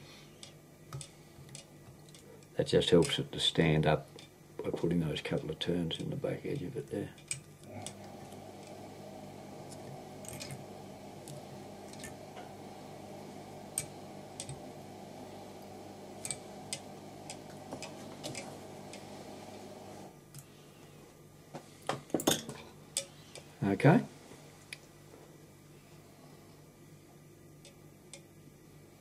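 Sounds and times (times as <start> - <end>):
steady low hum: 0.0 - 29.0
tool clicks and taps: 13.7 - 14.7, 16.2 - 19.1.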